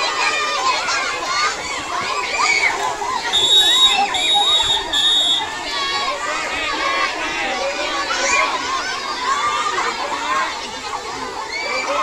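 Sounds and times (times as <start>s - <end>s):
children shouting and chattering: 0.0s - 12.0s.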